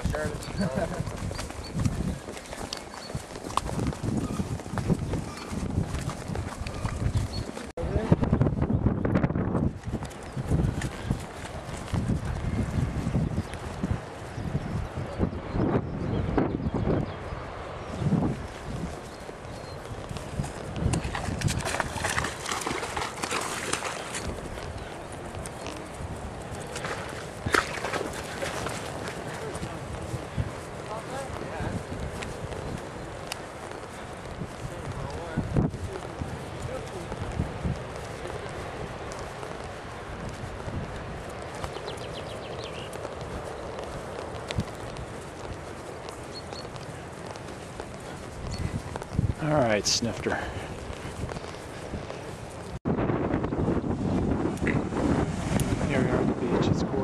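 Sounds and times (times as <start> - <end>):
horse hooves clip-clopping: 0.0 - 7.8, 9.3 - 15.2, 17.1 - 53.3, 53.9 - 56.2.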